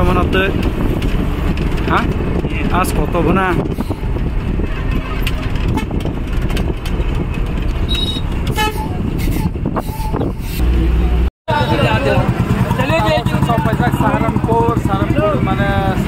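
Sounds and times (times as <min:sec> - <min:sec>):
bus engine and road rumble: 0:00.0 - 0:16.0
vehicle horn toot: 0:07.9 - 0:10.3.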